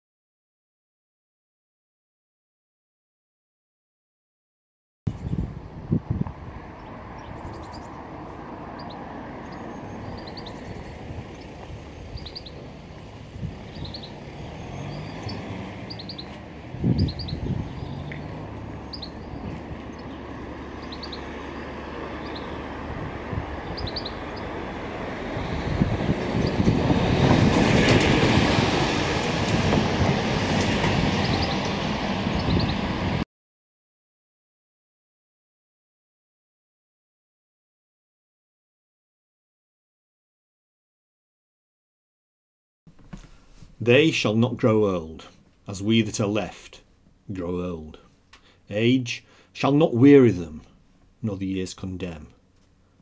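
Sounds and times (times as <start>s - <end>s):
traffic rumble: 5.1s - 33.2s
vehicle passing: 6.3s - 33.2s
high bird chirps: 6.8s - 8.0s, 8.7s - 12.7s, 13.6s - 22.6s, 23.6s - 24.5s, 31.1s - 31.8s, 32.4s - 32.8s.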